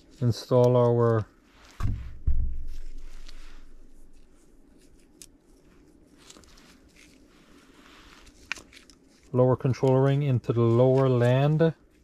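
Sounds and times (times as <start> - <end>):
low rustling: 1.0 - 9.4.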